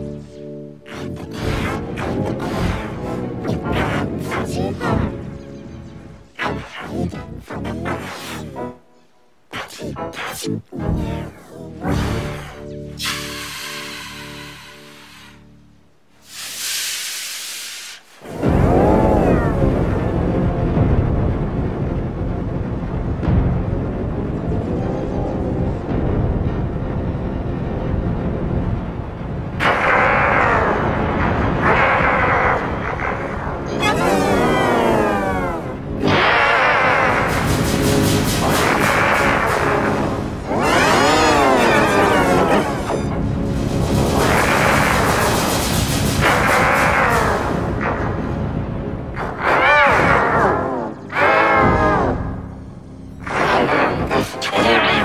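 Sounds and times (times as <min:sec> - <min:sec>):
distorted pitch-shifted soundtrack: 0:00.0 - 0:15.9, 0:18.2 - 0:55.0
brief hiss: 0:16.2 - 0:18.2
dense low rumble: 0:18.4 - 0:36.1, 0:37.2 - 0:46.4.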